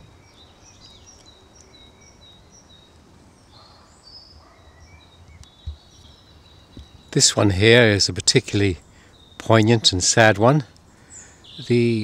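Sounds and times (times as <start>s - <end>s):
songbirds singing faintly: 0.0s - 12.0s
soft low thump: 5.6s - 5.8s.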